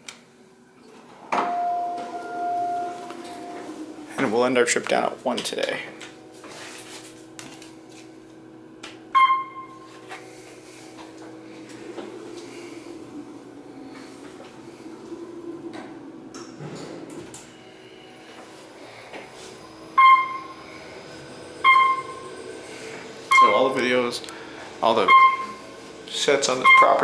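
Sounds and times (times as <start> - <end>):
elevator hum and travel rumble: 0.0 - 27.0
short electronic beep: 9.2 - 9.8, 20.0 - 20.5, 21.6 - 22.2, 23.3 - 23.6, 25.0 - 25.6, 26.6 - 27.0.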